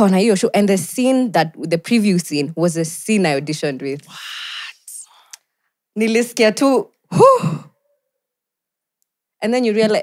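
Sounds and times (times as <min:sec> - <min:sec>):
person vocal exclamation: 0:04.1 - 0:05.1.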